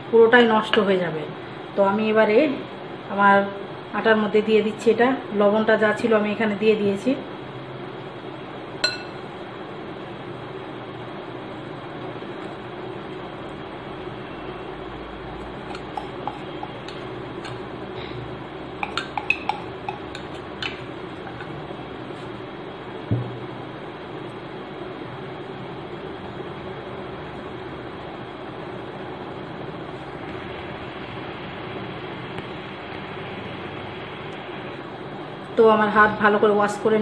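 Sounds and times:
steady background hiss: 0.0 - 37.0
steady background noise: 0.0 - 37.0
metal spoon stirring flour in glass bowl: 15.6 - 17.6, 18.8 - 21.6.

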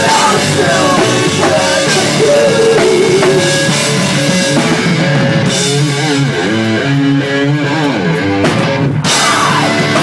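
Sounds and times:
electric guitars playing rock riff: 0.0 - 10.0.

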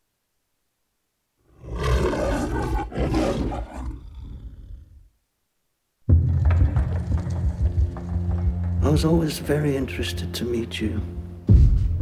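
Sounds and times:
lion roaring: 1.5 - 5.1.

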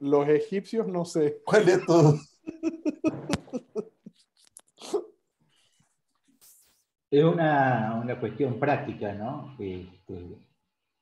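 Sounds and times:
men laughing: 1.5 - 4.1.

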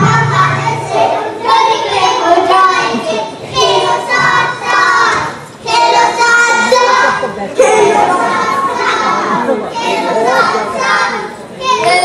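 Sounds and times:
children calling out: 0.0 - 12.0.

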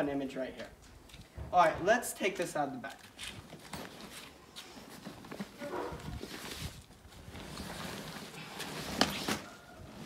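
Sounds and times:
fabric rustling and scraping: 3.2 - 10.0.

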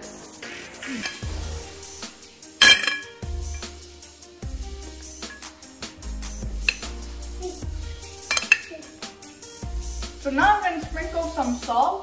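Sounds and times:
background music: 0.0 - 12.0
spoon clinking in ceramic bowl: 2.6 - 3.7, 6.6 - 6.9, 8.3 - 8.7.

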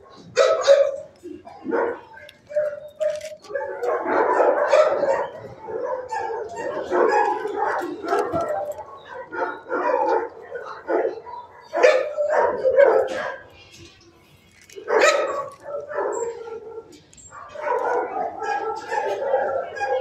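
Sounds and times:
dogs barking: 0.0 - 13.9, 14.7 - 20.0.

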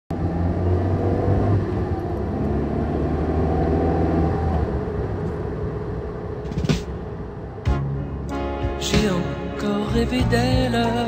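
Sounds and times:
car engine and road noise: 0.1 - 11.0.

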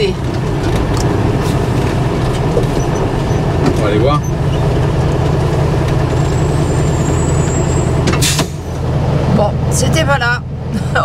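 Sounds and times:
vehicle rolling over gravel: 0.1 - 8.1.

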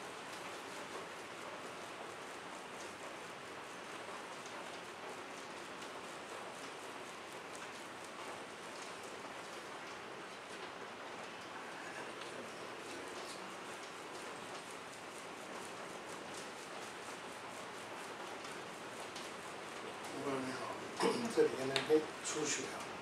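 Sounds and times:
steady hiss: 0.0 - 23.0.

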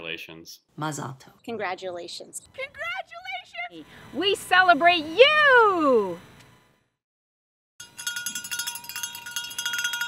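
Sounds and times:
cowbell clanking rapidly: 7.8 - 10.0.

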